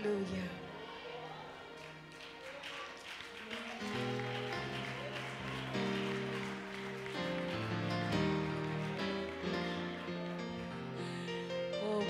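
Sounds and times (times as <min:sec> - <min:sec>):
church keyboard playing chords: 0:03.0 - 0:12.0.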